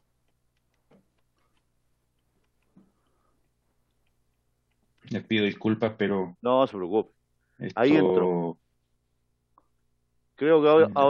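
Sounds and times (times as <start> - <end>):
faint ticks: 0.2 - 5.1.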